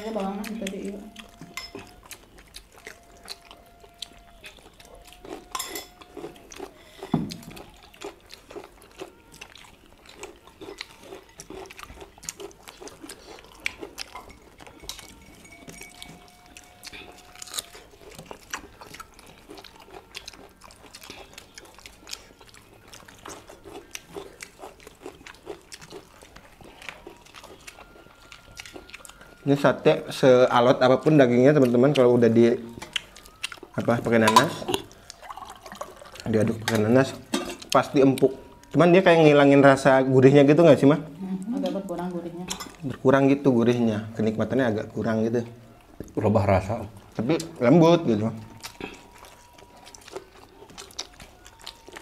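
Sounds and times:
people chewing and eating: 0:00.0 - 0:52.0
cutlery clicking against plates: 0:01.4 - 0:02.0, 0:05.5 - 0:06.0, 0:14.0 - 0:16.2, 0:34.2 - 0:34.8, 0:36.7 - 0:37.8.

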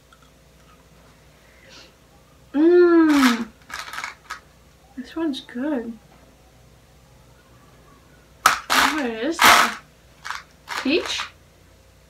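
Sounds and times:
young woman speaking: 0:02.6 - 0:03.5, 0:05.0 - 0:06.0, 0:08.8 - 0:09.8, 0:10.7 - 0:11.4.

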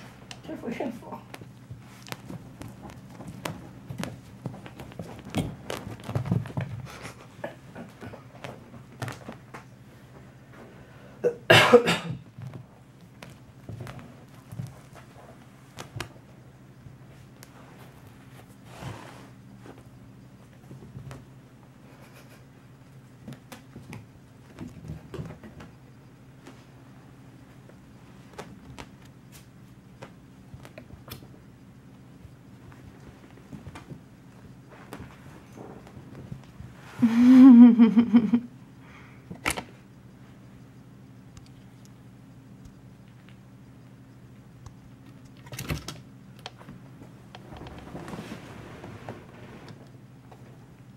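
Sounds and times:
faint low hum: 0:00.0 - 0:50.9
kitten paws thumping on carpet: 0:01.3 - 0:07.0.

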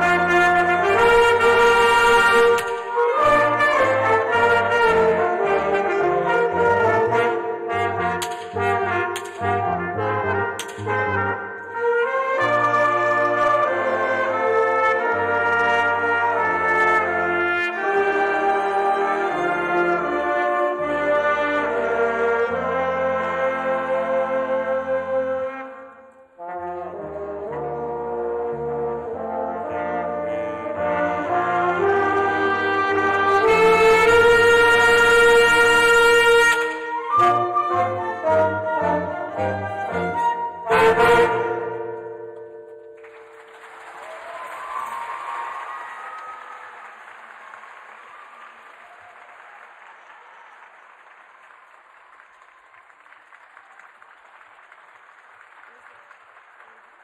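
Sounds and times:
concert band playing: 0:00.0 - 0:14.4
audience applause: 0:43.0 - 0:57.0.

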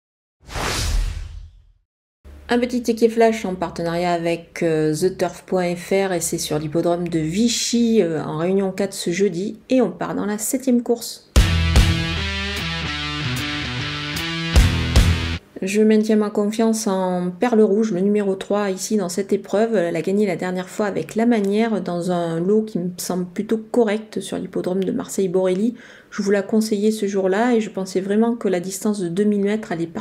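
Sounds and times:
whoosh sound effect: 0:00.4 - 0:01.8
guitar music jingle: 0:11.4 - 0:15.4
heavy bass line: 0:11.4 - 0:15.4.

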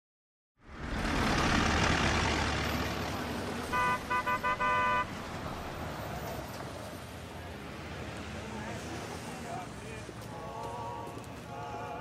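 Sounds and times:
busy street traffic: 0:00.6 - 0:12.0
car horn honking: 0:03.7 - 0:05.2.

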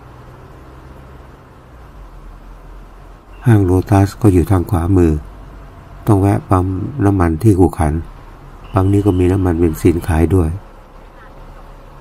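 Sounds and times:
car rolling hum inside cabin: 0:00.0 - 0:12.0
man speaking: 0:03.4 - 0:05.3, 0:06.0 - 0:08.1, 0:08.7 - 0:10.7.

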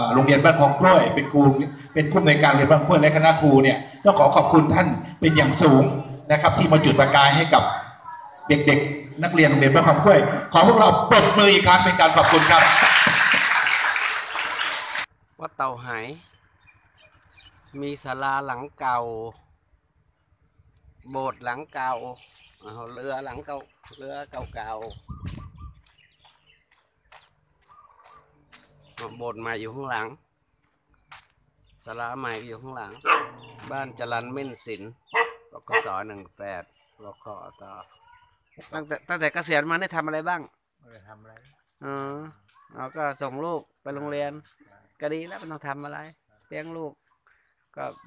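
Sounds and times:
man speaking: 0:00.0 - 0:13.0, 0:31.8 - 0:37.9, 0:38.6 - 0:47.0, 0:47.8 - 0:48.0
children clapping: 0:12.0 - 0:15.1.

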